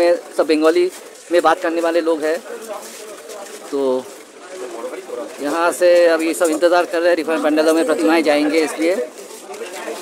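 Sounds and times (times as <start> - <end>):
busy street hubbub: 0.0 - 10.0.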